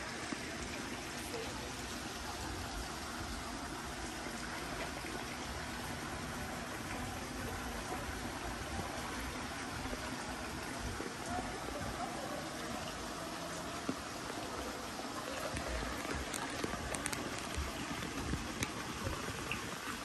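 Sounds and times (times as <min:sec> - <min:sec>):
water trickling: 0:00.0 - 0:20.0.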